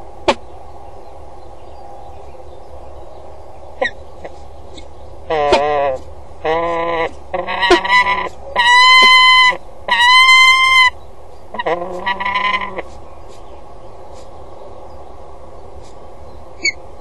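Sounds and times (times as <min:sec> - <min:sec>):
falcons calling harshly: 0:03.8 - 0:13.5.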